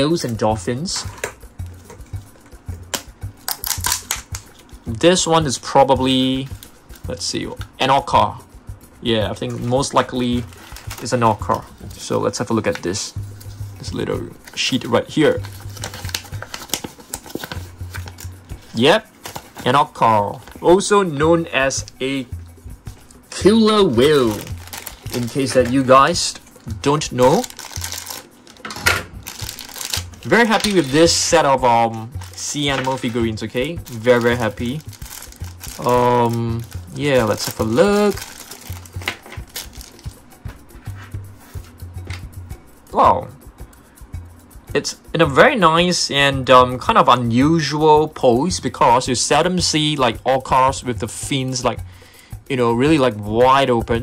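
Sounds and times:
background music: 0:00.0 - 0:54.0
scissors cutting plastic: 0:02.9 - 0:04.4, 0:15.6 - 0:18.2
plastic bag crinkling: 0:09.6 - 0:12.9, 0:14.5 - 0:20.9, 0:23.7 - 0:40.2.

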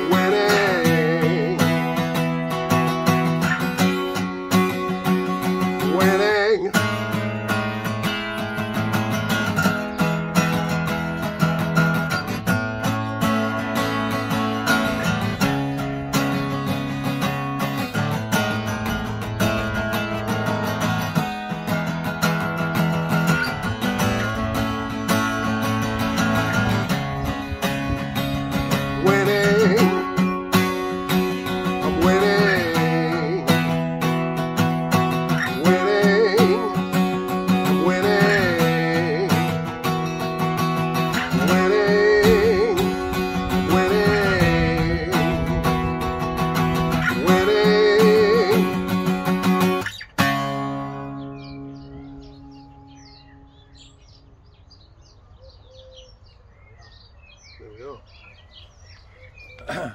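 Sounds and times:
man singing: 0:00.0 - 0:07.9, 0:28.6 - 0:45.9, 0:46.7 - 0:49.6
acoustic guitar strumming chords: 0:00.0 - 0:54.3.

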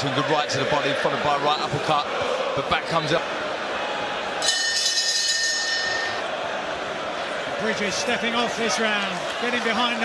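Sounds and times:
arena crowd noise: 0:00.0 - 0:10.0
boxing bell ringing: 0:04.4 - 0:06.2.

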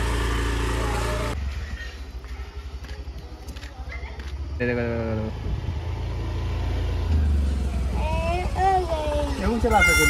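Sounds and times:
scooter engine passing: 0:00.0 - 0:01.8, 0:04.8 - 0:10.0.

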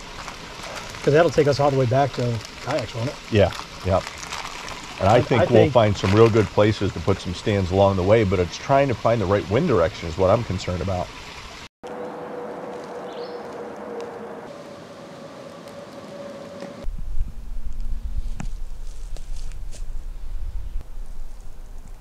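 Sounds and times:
twigs snapping: 0:02.2 - 0:05.0, 0:11.9 - 0:14.2
footfalls on forest floor: 0:11.9 - 0:14.2
wind and handling rumble: 0:11.9 - 0:22.0.

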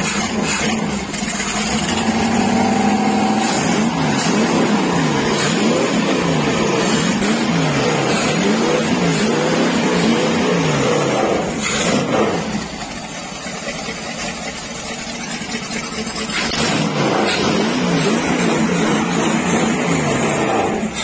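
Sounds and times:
boat engine revving: 0:00.0 - 0:21.0.

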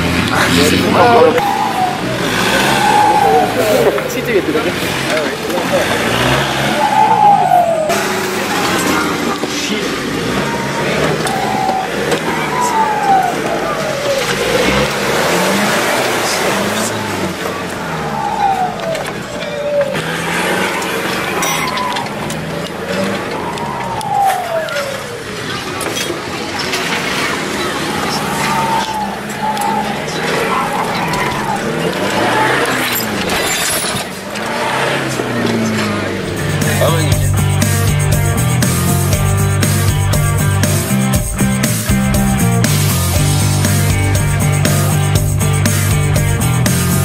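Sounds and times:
off-road engines revving: 0:00.0 - 0:47.0
voices: 0:00.0 - 0:47.0.

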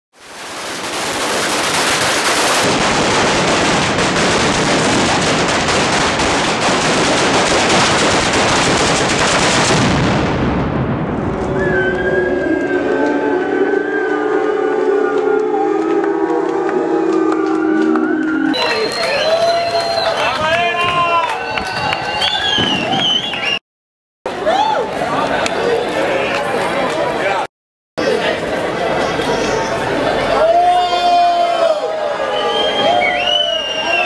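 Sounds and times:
firecrackers crackling: 0:00.2 - 0:11.5
crowd shouting: 0:11.7 - 0:23.6, 0:28.0 - 0:34.0.

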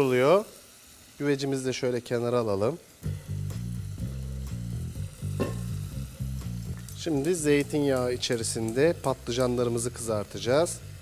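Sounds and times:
meat and onions sizzling: 0:00.0 - 0:11.0
background music with bass line: 0:03.0 - 0:11.0.

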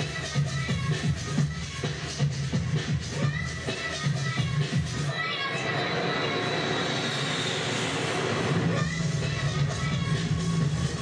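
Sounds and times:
dance music beat: 0:00.0 - 0:11.0.

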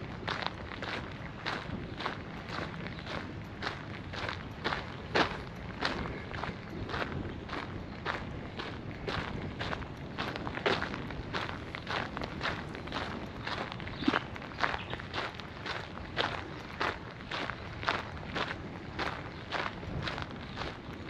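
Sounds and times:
footsteps on gravel: 0:00.0 - 0:21.0.

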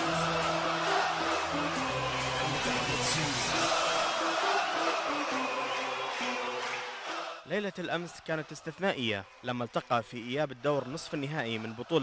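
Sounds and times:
background music with held bass notes: 0:00.0 - 0:04.2.

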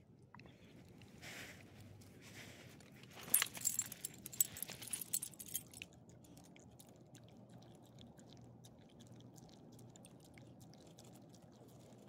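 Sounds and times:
dog chewing treats: 0:03.0 - 0:12.0.

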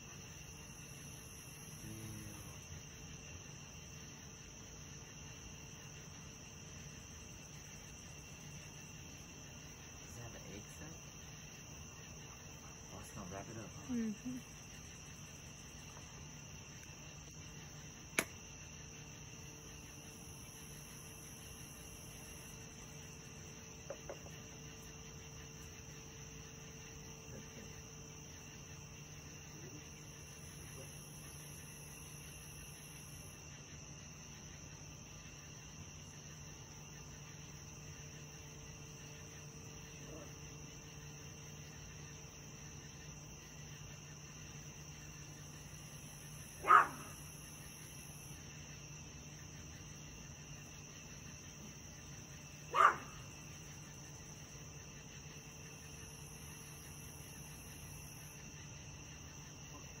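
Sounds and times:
faint insect chirring: 0:00.0 - 1:00.0
dog barking: 0:46.6 - 0:47.3, 0:52.7 - 0:53.3.

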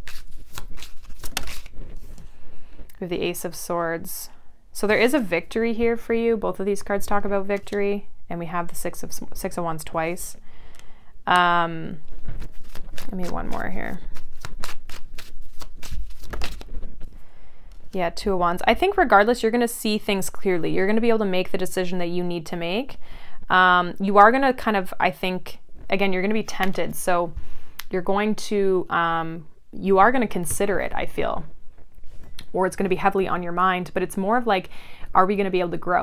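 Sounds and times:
cards slapping and rustling: 0:00.0 - 0:02.3, 0:12.0 - 0:17.8.

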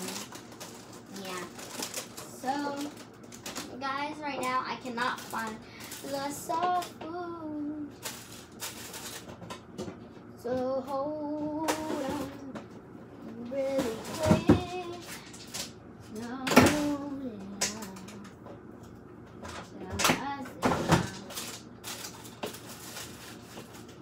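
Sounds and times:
girl's voice: 0:00.0 - 0:00.3, 0:01.1 - 0:08.0, 0:10.4 - 0:12.6, 0:13.3 - 0:15.2, 0:16.1 - 0:18.2, 0:19.7 - 0:21.4.

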